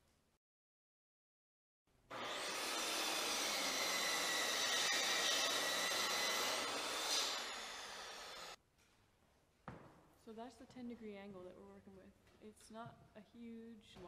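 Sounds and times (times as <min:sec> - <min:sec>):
electric power saw cutting wood: 0:02.1 - 0:08.6.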